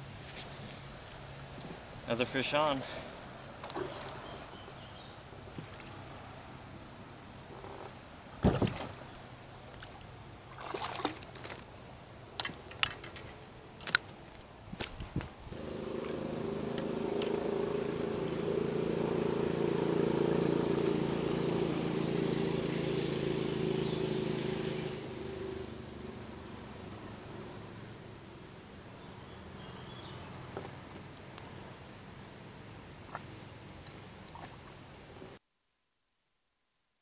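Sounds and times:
knocks and clicks in boat: 7.6s - 9.0s.

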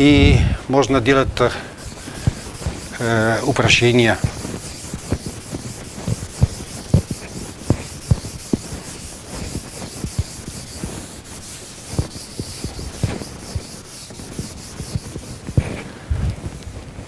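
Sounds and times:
chalk tapping on board: 1.8s - 15.9s
chalk scratching on chalkboard: 1.8s - 16.7s.

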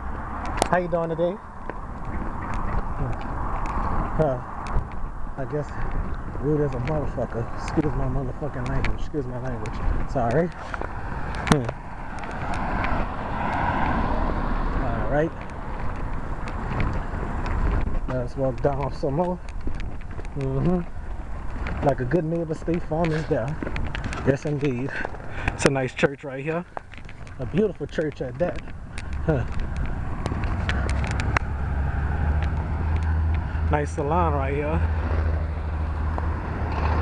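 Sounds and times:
car passing: 0.0s - 37.0s
wind rumble on microphone: 0.0s - 37.0s
person murmuring: 11.5s - 11.8s, 29.2s - 29.6s.

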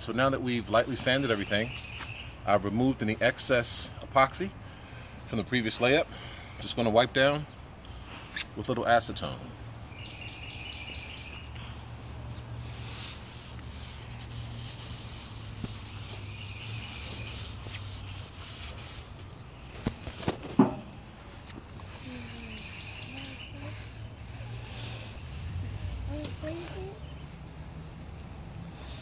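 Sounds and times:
insects chirping: 0.0s - 29.0s
sharp knocks: 20.3s - 21.0s.

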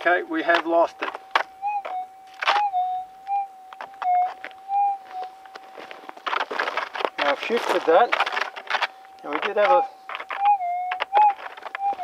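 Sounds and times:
gravel scraping: 0.0s - 3.1s, 3.8s - 12.0s
coil clicking on gravel: 0.0s - 12.0s
metal detector hum: 0.0s - 12.0s.

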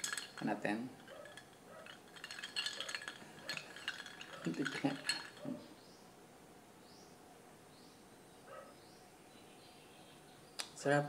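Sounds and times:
ice cubes clinking in glass: 0.0s - 5.6s.

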